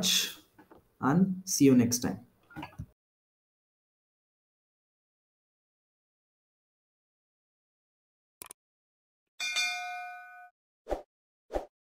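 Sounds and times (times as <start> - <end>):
bright bell ding: 9.4 - 10.5.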